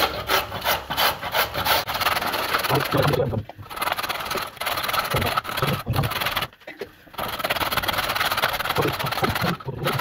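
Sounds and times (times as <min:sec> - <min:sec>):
carrot grated on metal grater: 0:00.0 - 0:06.5, 0:07.1 - 0:10.0.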